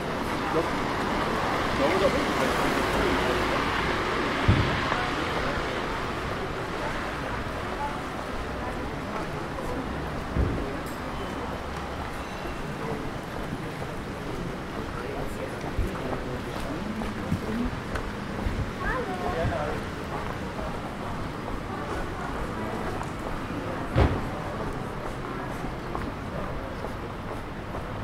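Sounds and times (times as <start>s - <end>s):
background traffic: 0.0s - 28.0s
passers-by voices: 0.0s - 28.0s.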